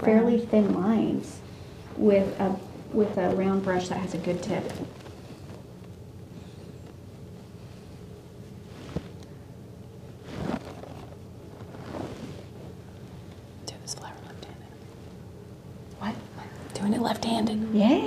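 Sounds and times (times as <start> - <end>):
faint hum: 0.0 - 18.0
soft whispered voice: 13.6 - 14.9.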